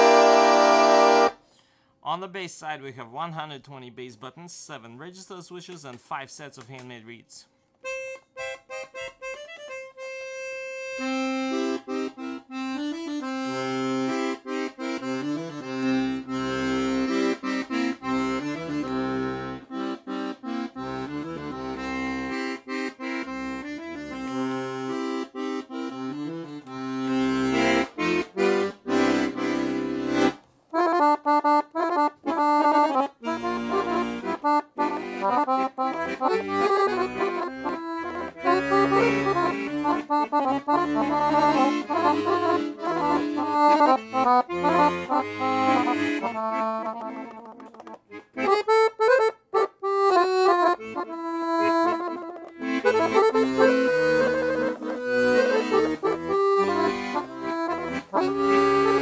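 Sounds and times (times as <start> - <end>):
piano accordion playing: 0.0 - 1.4, 7.8 - 59.0.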